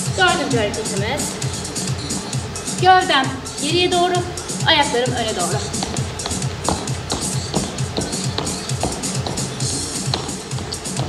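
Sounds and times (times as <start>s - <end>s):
upbeat workout music: 0.0s - 11.0s.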